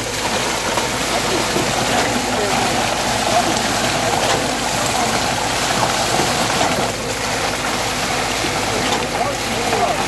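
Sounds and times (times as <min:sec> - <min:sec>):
wet concrete rushing: 0:00.0 - 0:10.0.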